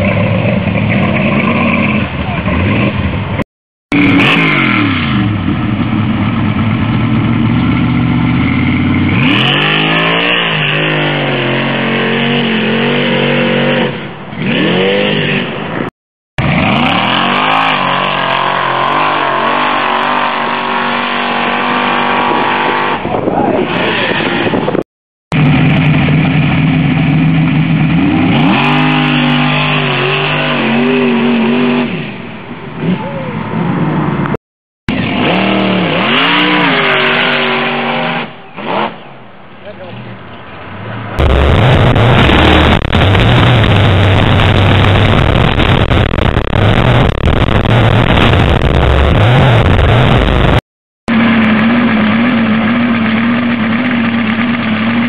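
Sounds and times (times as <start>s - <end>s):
truck engines revving at full throttle: 0.0s - 55.0s.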